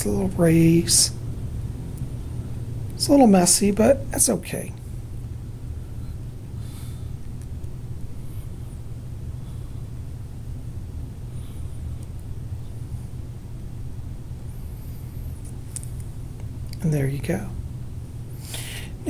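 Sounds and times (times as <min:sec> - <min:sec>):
low background rumble: 0:00.0 - 0:19.0.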